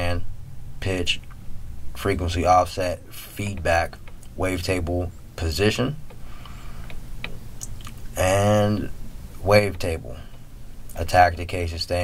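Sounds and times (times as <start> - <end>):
steady low hum: 0.0 - 12.0
soft clicks: 3.5 - 5.0, 6.0 - 8.1.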